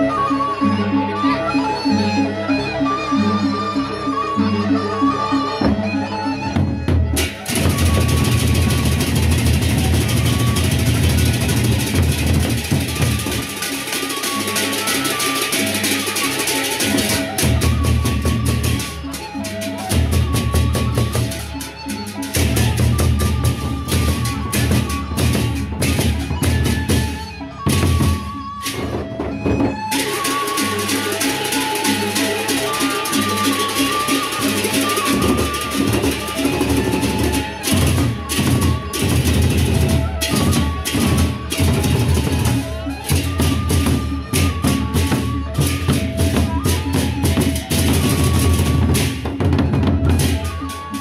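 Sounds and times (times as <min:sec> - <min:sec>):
barrel drums beaten fast: 0:07.1 - 0:19.0.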